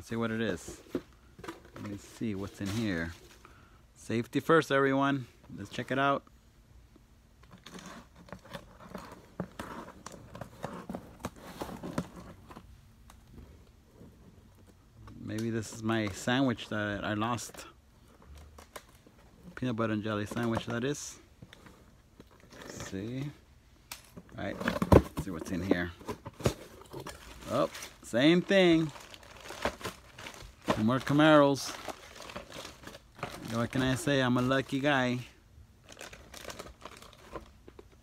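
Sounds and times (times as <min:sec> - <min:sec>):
cardboard and plastic handling: 0:00.2 - 0:03.4, 0:07.4 - 0:35.2, 0:35.8 - 0:38.0.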